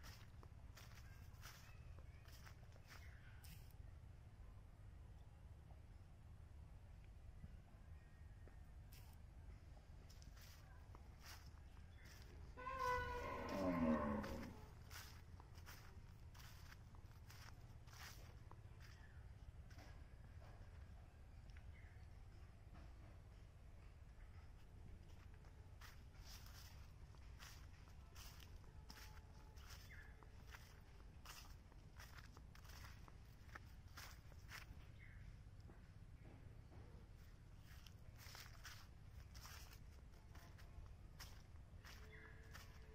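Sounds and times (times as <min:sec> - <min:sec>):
footsteps on dry leaves: 0:00.0 - 0:03.8, 0:10.1 - 0:19.0, 0:25.8 - 0:35.1, 0:37.1 - 0:42.9
cow mooing: 0:12.6 - 0:14.7.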